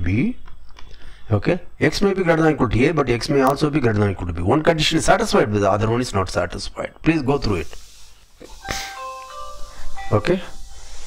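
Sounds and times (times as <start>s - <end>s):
brief hiss: 7.4s - 11.0s
short electronic tune: 8.5s - 10.9s.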